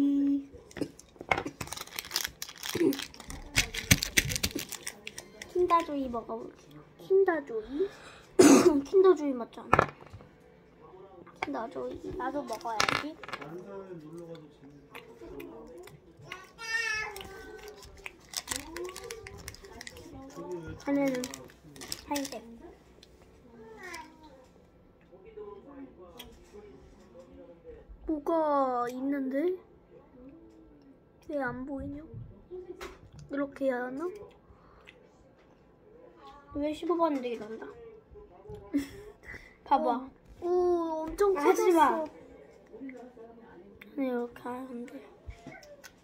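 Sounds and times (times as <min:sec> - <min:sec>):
plastic wrapper crinkling: 0:01.4 - 0:05.9, 0:17.2 - 0:22.7.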